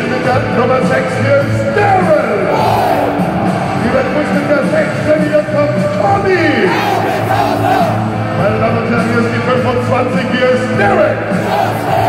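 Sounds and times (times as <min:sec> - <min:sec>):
loud music over pa system: 0:00.0 - 0:12.0
crowd noise: 0:01.1 - 0:09.7, 0:10.8 - 0:12.0.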